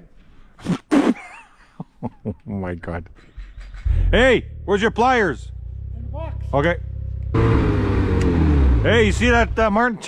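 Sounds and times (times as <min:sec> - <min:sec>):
snowmobile engine revving: 0:03.6 - 0:09.9.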